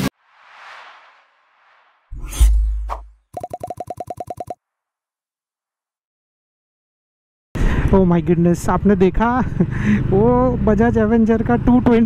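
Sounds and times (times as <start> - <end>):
whoosh: 0.0 - 3.3.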